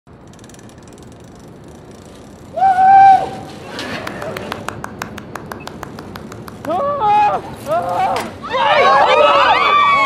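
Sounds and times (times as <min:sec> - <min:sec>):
bicycle freewheel clicking: 0:00.1 - 0:04.9.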